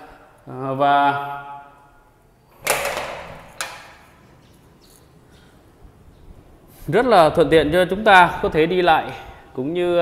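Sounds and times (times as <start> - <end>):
glass door clattering open: 2.6 - 4.0.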